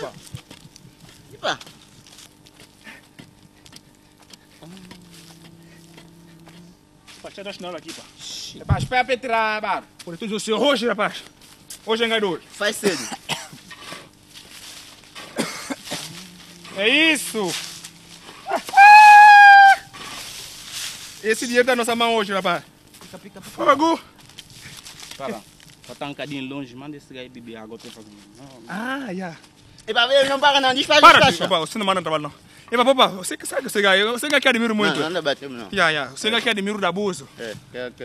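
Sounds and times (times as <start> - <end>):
low hum: 3.4 - 7.6, 14.2 - 21.2
person shouting: 16.5 - 19.9
rooster crowing: 17.8 - 19.9.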